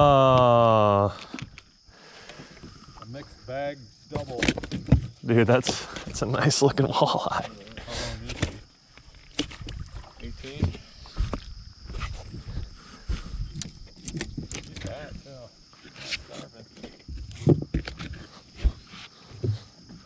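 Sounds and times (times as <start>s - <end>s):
fishing tackle knocks and rustles: 4.1s - 6.5s, 7.3s - 20.0s.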